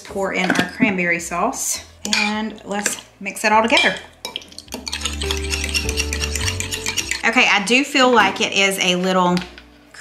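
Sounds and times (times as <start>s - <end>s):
soft background music: 0.0s - 10.0s
scrapes and clinks on glass: 4.3s - 7.4s
utensil stirring thick sauce: 4.3s - 7.8s.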